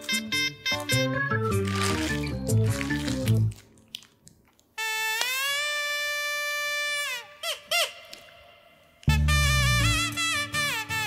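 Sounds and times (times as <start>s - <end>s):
comedy background music: 0.0s - 3.5s, 9.1s - 11.0s
short bouncing notes: 9.1s - 10.3s.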